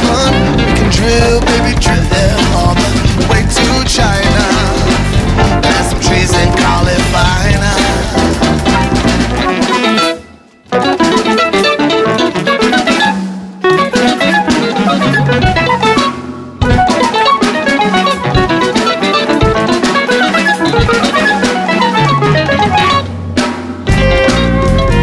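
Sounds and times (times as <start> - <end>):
drum kit: 0.0 - 25.0
guitar: 0.0 - 25.0.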